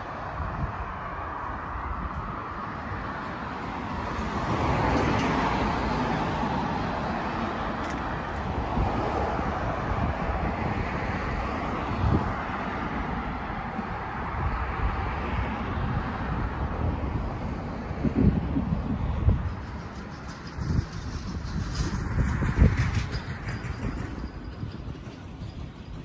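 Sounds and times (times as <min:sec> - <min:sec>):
passing cars: 0:00.0 - 0:26.0.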